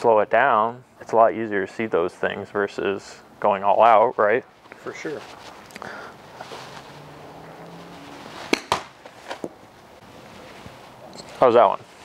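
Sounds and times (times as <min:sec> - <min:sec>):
golf club striking ball: 0:08.5 - 0:09.6.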